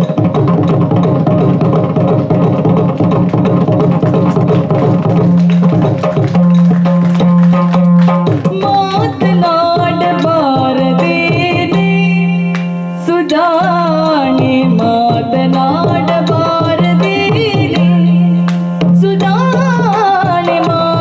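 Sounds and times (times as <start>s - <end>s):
barrel drum played by hand: 0.0s - 12.8s, 13.5s - 21.0s
woman singing: 8.4s - 21.0s.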